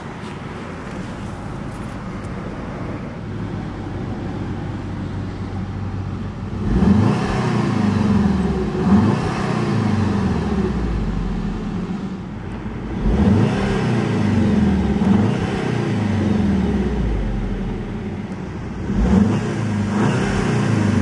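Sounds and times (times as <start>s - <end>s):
car engine revving: 3.9s - 21.0s.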